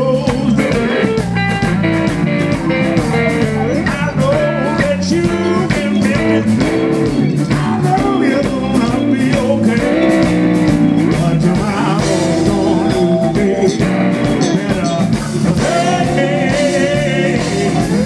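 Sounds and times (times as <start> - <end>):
blues band playing: 0.0 - 18.0
electric guitar lead lines: 0.0 - 18.0.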